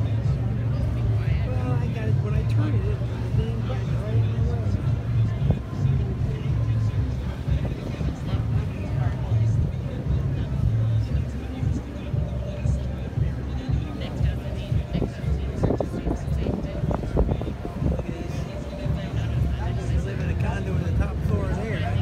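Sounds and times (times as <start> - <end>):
people chatting faintly: 0.0 - 22.0
ship deck low rumble: 0.0 - 22.0.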